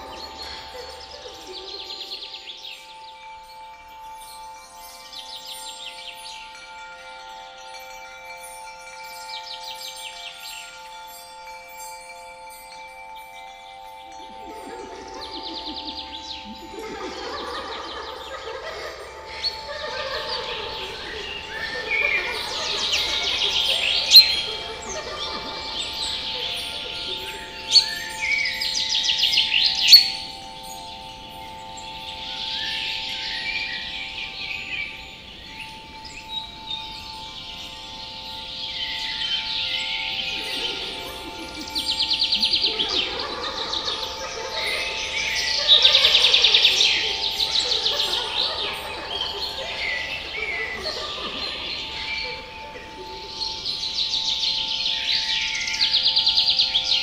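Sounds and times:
chattering of small voices: 0:00.0 - 0:04.0, 0:10.7 - 0:55.4
birds singing and trilling: 0:00.0 - 0:57.0
chime-like drone: 0:00.0 - 0:57.0.

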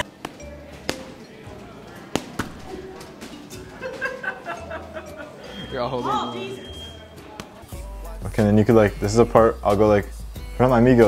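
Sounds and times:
punches thudding on a pad: 0:02.1 - 0:02.8
music with steady bass: 0:07.7 - 0:11.0.

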